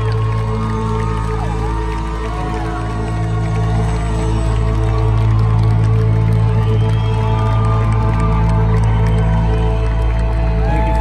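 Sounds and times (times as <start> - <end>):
crowd cheering faintly: 0.0 - 11.0.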